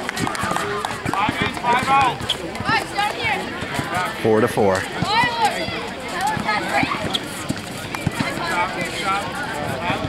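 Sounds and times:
basketballs bouncing on court: 0.0s - 9.1s, 9.7s - 10.0s
people talking: 0.0s - 10.0s.

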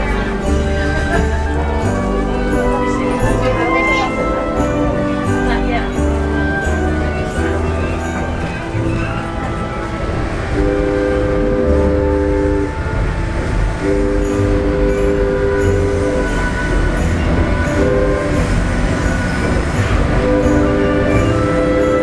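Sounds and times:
moving train rumble: 0.0s - 22.0s
locomotive air horn blasts: 2.6s - 22.0s.

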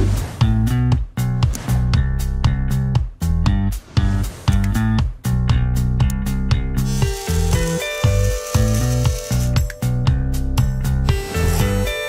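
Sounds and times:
background music with beat: 0.0s - 12.0s
electric shaver buzzing: 6.8s - 10.0s, 11.0s - 12.0s.

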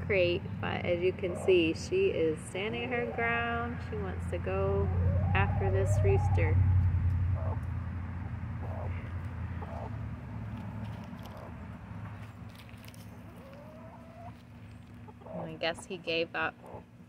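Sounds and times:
low hum: 0.0s - 13.3s
chickens clucking: 0.7s - 10.1s, 11.1s - 11.6s, 13.2s - 16.9s.

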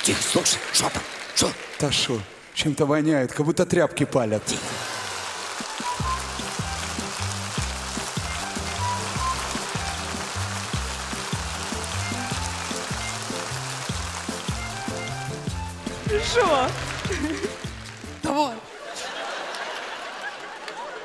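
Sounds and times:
audience applauding: 0.0s - 2.6s, 4.5s - 21.0s
upbeat stage music: 5.2s - 21.0s.

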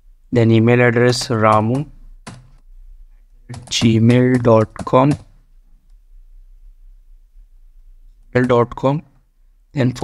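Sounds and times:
low steady hum: 0.0s - 10.0s
computer keyboard keystrokes: 1.1s - 2.6s, 3.5s - 5.4s, 8.4s - 8.8s.

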